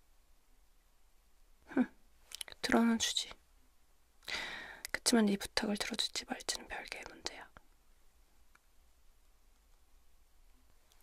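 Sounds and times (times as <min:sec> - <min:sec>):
faint room hiss: 0:00.0 - 0:11.0
woman whispering: 0:01.7 - 0:03.4, 0:04.8 - 0:07.6.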